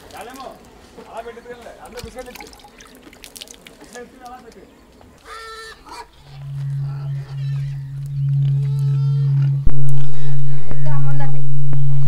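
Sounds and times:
faint high calls: 5.2 - 10.9
low droning tone: 6.1 - 12.0.

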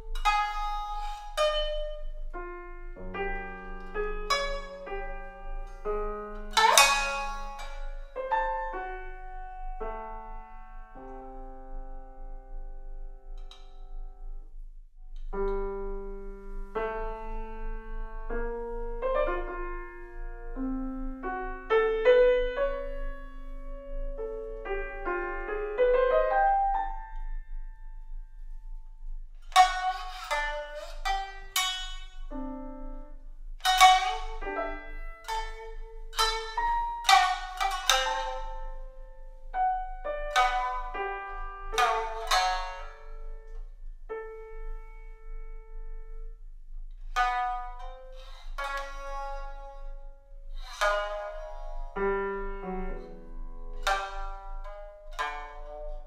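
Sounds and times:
shamisen and piano duet: 0.0 - 56.0.

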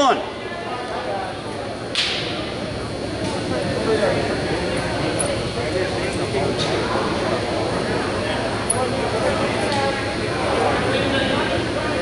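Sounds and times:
murmur of voices: 0.0 - 12.0
sharp slap ringing in hall: 1.9 - 2.5.

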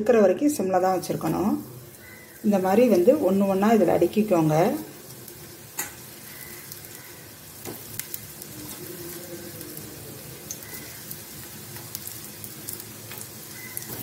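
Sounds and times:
hot oil popping: 0.0 - 14.0
oil sizzling in a pan: 0.3 - 14.0.

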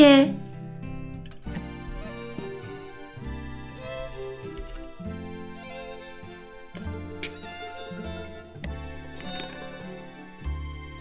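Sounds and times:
light instrumental music: 0.0 - 11.0.

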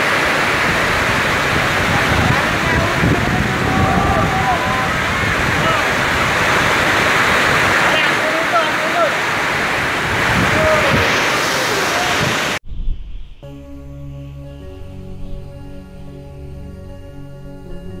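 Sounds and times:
heavy driving rain: 0.0 - 12.6
strong wind: 0.0 - 13.5
soft music with held notes: 13.4 - 18.0.

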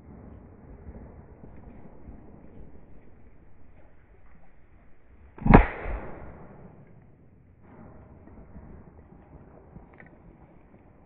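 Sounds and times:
shotgun shot: 5.4 - 6.8
faint bang: 5.4 - 8.9.

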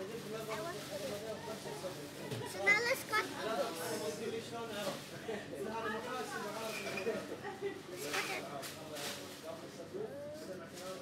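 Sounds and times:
children talking: 0.4 - 4.2, 7.4 - 8.5, 9.9 - 10.7.

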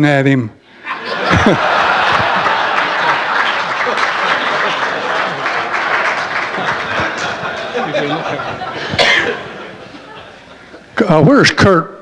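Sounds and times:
audience applauding: 1.0 - 9.9.

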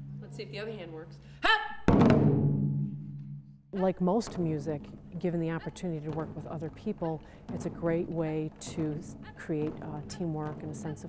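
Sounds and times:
deep taiko drum boom: 1.8 - 3.3.

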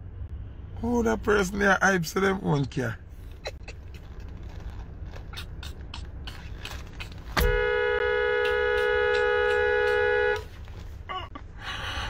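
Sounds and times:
low rumble: 0.0 - 2.0
car horn two-tone blast: 7.4 - 10.5.

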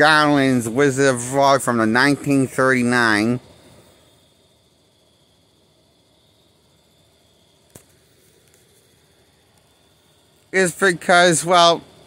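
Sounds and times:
thin steady high tone: 0.0 - 12.0
faint click: 7.7 - 8.8, 9.5 - 9.7.

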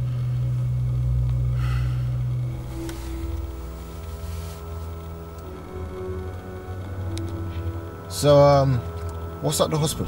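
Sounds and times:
slow held-note soundtrack music: 0.0 - 10.0.

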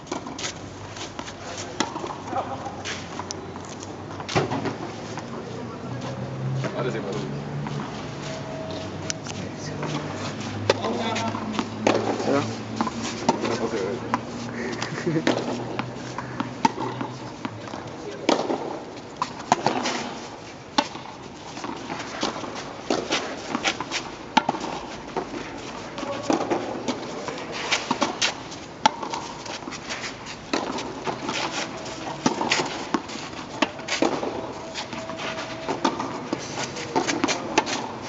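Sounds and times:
voices: 1.3 - 18.8, 25.6 - 28.2, 31.0 - 38.0.

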